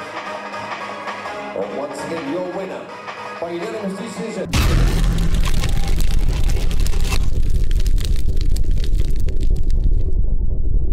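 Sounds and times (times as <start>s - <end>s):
sharp hit: 4.5s - 7.4s
fiery explosion rumble: 4.5s - 10.9s.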